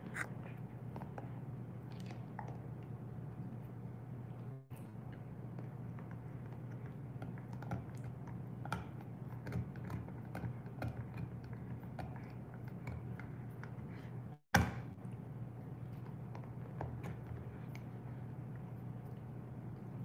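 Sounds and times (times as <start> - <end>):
dog chewing on a bone: 5.0 - 14.1.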